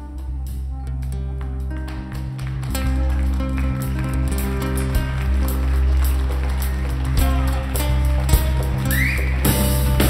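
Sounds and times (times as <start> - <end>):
double bass notes: 0.0 - 10.0
drums and percussion: 0.0 - 10.0.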